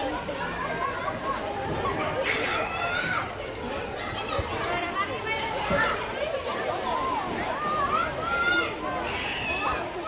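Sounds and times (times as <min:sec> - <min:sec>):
overlapping voices talking and calling: 0:00.0 - 0:10.0.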